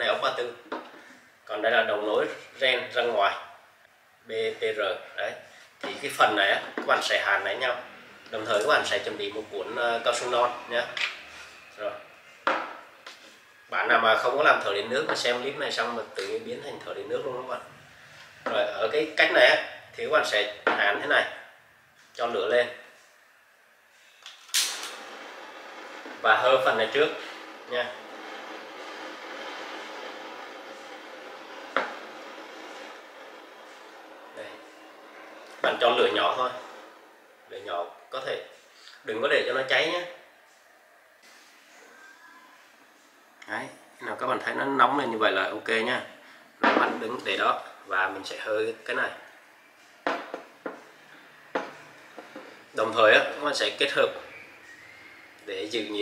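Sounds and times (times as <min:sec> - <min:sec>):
gas torch flame hissing: 0:05.5 - 0:13.4, 0:23.9 - 0:37.6, 0:41.2 - 0:41.9
gas torch click: 0:24.2 - 0:25.0.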